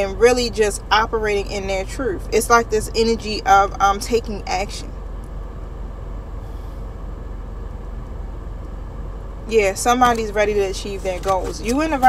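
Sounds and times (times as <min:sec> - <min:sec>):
car engine rumble in cabin: 0:00.0 - 0:12.0.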